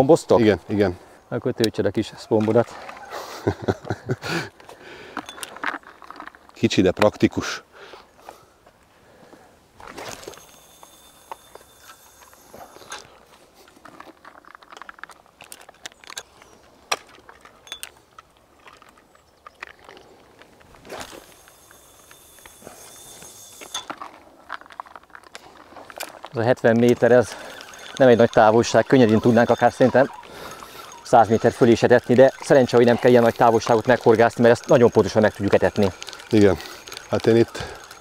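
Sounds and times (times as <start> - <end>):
line whistling off reel spool: 9.8 - 13.2, 20.8 - 24.7, 25.8 - 38.0
reel and rod clicks: 9.8 - 38.0.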